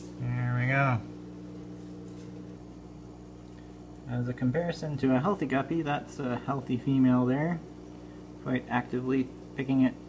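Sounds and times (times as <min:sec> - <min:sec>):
aquarium equipment humming: 0:00.0 - 0:10.0.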